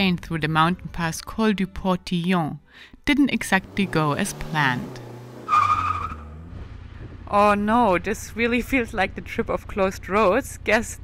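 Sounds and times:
brakes squealing: 3.4 - 7.6.

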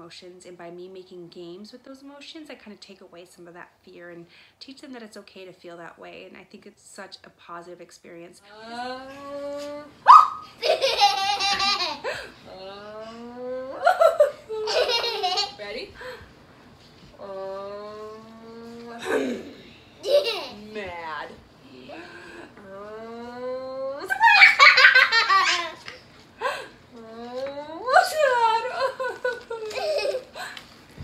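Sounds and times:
woman and children laughing: 10.5 - 16.1, 23.9 - 26.7, 27.8 - 30.6.

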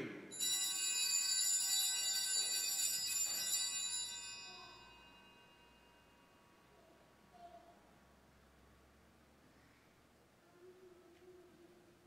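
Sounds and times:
altar bell ringing: 0.3 - 6.8.

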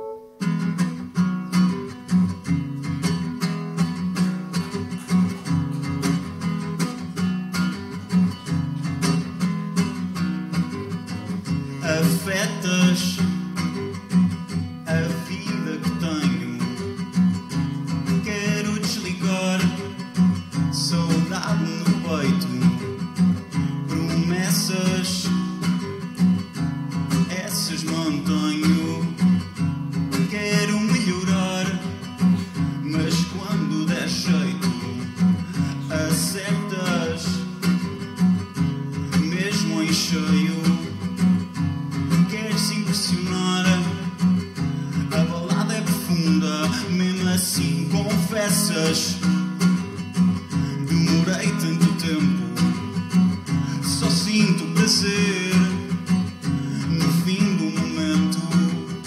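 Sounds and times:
strummed acoustic guitar: 0.0 - 59.0.

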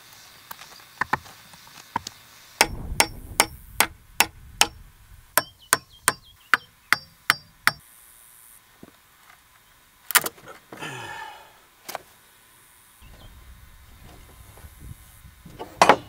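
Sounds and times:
hammer striking log with metallic ring: 2.6 - 4.8, 5.4 - 7.8.

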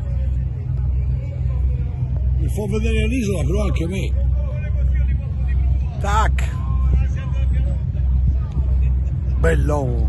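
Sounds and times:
faint voices: 0.0 - 10.0
steady low rumble: 0.0 - 10.0.

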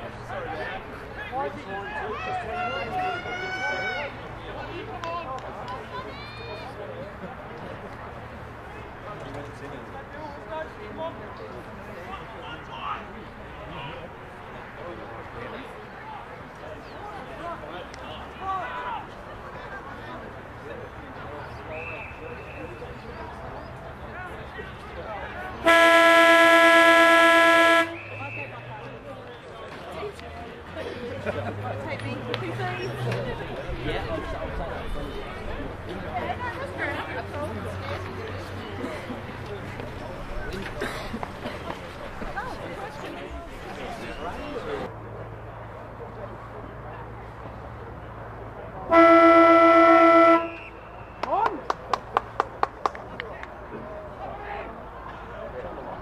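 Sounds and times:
car horn: 25.6 - 28.5, 48.9 - 51.2
sharp claps: 50.6 - 53.6.

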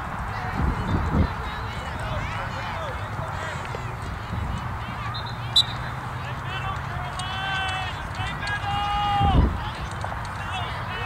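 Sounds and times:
distant high-pitched shouts: 4.9 - 9.5.

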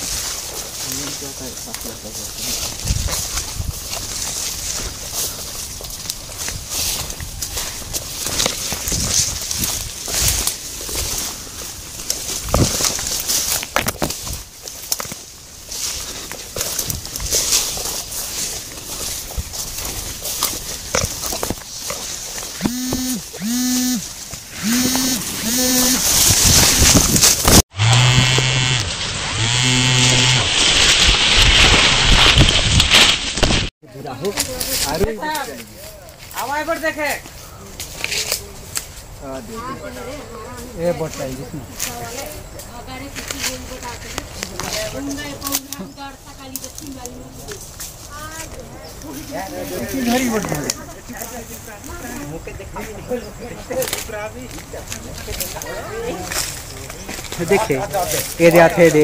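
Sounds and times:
leaves and branches rustling: 0.0 - 59.0.

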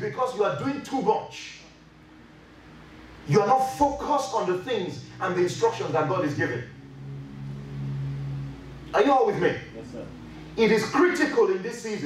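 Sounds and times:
electronic keyboard low chord: 1.6 - 12.0.

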